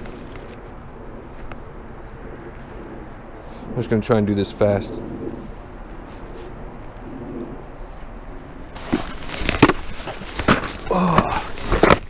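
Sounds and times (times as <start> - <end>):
plastic bucket cracking underfoot: 8.7 - 12.0.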